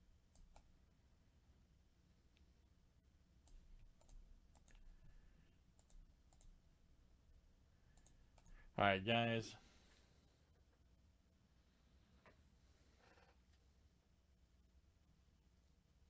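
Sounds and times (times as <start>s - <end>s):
soft clicks: 5.7s - 6.6s, 7.9s - 8.5s.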